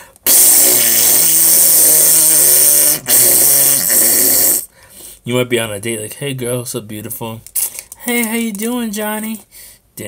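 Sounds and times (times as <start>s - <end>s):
man making spluttering hiss: 0.0s - 4.7s.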